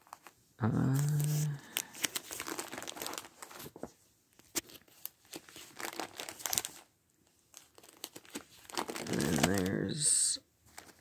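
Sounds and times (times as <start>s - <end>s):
rustling of objects handled: 0.0s - 11.0s.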